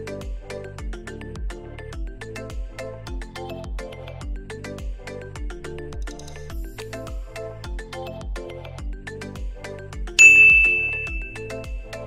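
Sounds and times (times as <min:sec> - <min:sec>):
background music with steady beat: 0:00.0 - 0:12.0
bright ding: 0:10.2 - 0:11.7.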